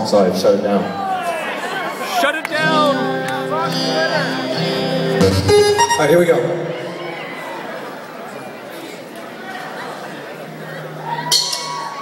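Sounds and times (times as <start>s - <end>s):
band holding sustained notes: 2.5s - 6.8s
rising run of notes: 2.6s - 6.9s.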